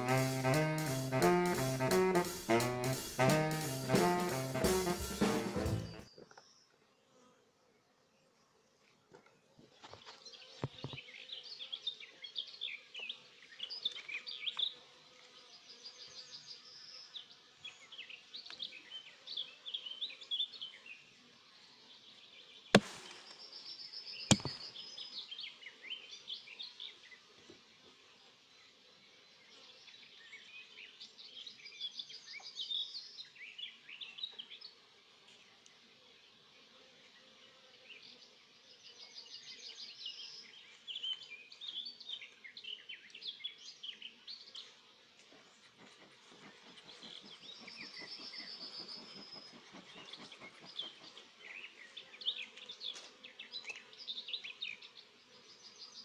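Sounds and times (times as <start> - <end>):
bees humming: 0.0 - 6.0
songbirds chirping and trilling: 8.0 - 56.0.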